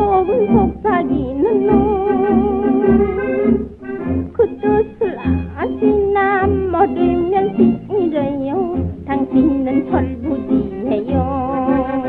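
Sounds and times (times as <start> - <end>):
woman singing with vibrato: 0.0 - 3.4, 4.3 - 12.0
small band playing: 0.0 - 12.0.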